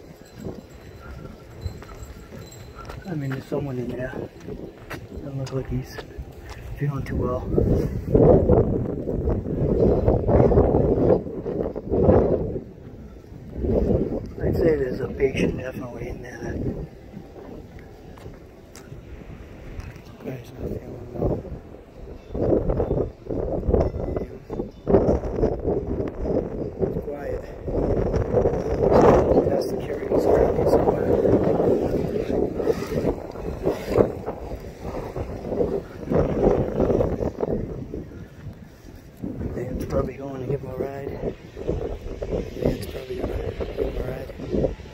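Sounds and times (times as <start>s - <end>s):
wind buffeting microphone: 0.0s - 44.9s.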